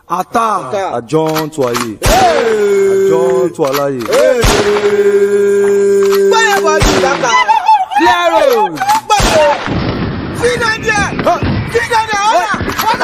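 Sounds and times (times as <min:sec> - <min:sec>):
man chanting calls: 0:00.0 - 0:07.3
sharp thumps: 0:08.8 - 0:13.0.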